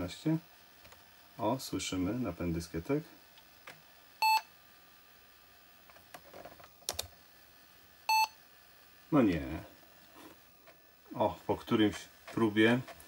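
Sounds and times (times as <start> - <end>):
short electronic beeps: 8.1 - 8.4
floppy drive clicks: 11.7 - 13.0.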